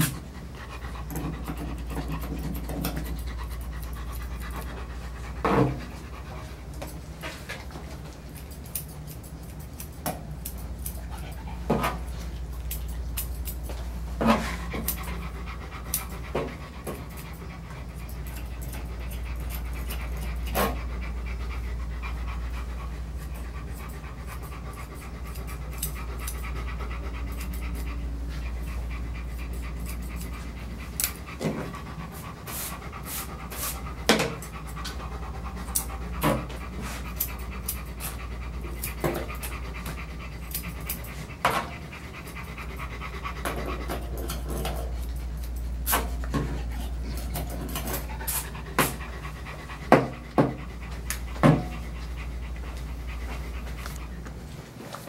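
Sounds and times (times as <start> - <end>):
constant low hum: 0.0 - 55.0
dog panting: 0.0 - 55.0.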